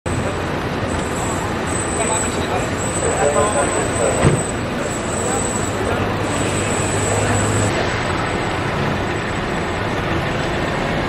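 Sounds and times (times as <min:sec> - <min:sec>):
road traffic noise: 0:00.0 - 0:11.0
high-pitched whine: 0:00.1 - 0:11.0.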